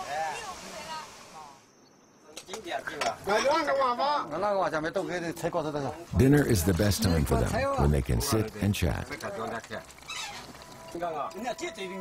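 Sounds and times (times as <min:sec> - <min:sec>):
voices talking: 0:06.1 - 0:09.2.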